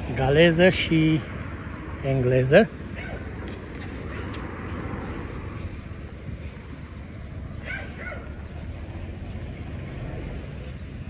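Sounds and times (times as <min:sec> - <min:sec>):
low rumble of street noise: 0:00.0 - 0:11.0.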